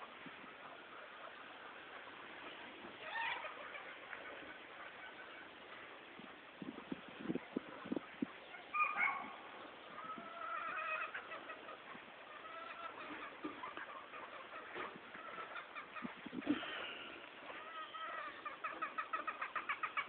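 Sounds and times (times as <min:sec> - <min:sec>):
roosters calling and clucking: 0:00.0 - 0:20.0.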